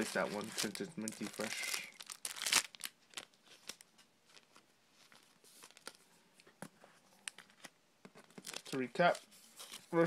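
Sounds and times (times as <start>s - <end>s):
trading cards and plastic rustling: 0.0s - 6.5s, 7.1s - 10.0s.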